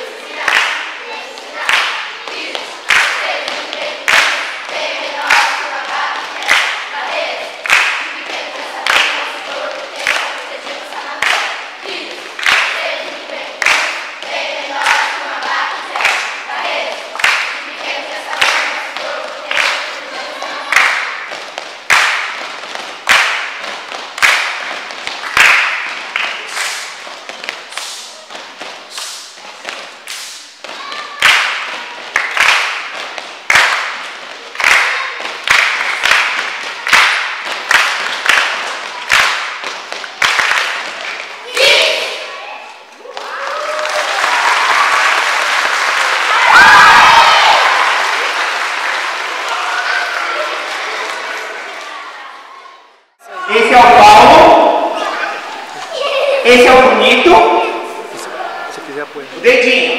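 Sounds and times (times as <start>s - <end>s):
children chanting together: 0.0s - 27.2s, 27.8s - 42.9s, 43.9s - 56.9s
rhythmic hand clapping: 0.0s - 42.4s, 43.0s - 52.1s.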